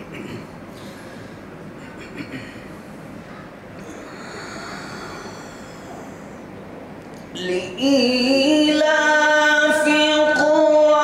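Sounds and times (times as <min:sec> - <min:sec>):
microphone and loudspeaker noise: 0:00.0 - 0:11.0.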